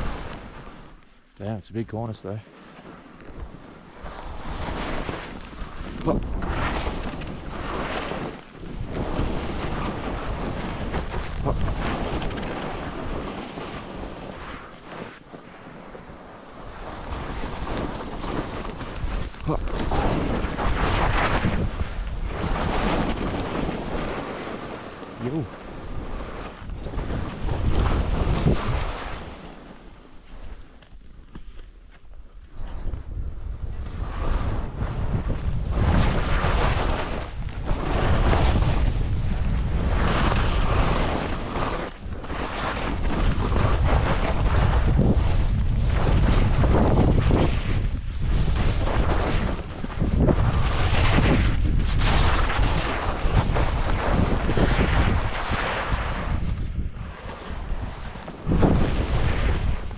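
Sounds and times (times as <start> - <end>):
wind rushing over microphone: 0.0 - 2.4, 3.2 - 31.1, 32.4 - 59.9
skis scraping on snow: 0.0 - 59.9.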